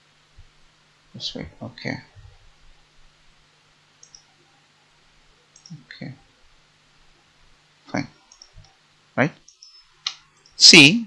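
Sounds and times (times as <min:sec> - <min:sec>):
man speaking: 0:01.2 - 0:02.1, 0:09.2 - 0:09.4, 0:10.6 - 0:11.0
computer mouse clicks: 0:04.0 - 0:04.3, 0:05.6 - 0:05.8, 0:08.3 - 0:08.8.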